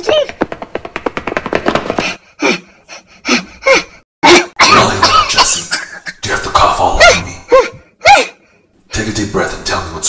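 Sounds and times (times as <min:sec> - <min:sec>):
person panting and gasping: 0:01.8 - 0:04.6.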